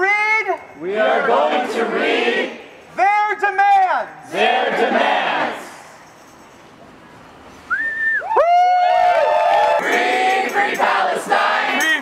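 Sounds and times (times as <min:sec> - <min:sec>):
high swooping whistle: 0:07.6 - 0:08.5.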